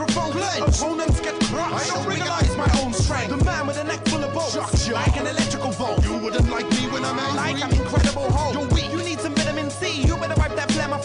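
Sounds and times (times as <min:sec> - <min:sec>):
man rapping: 0:00.0 - 0:11.0.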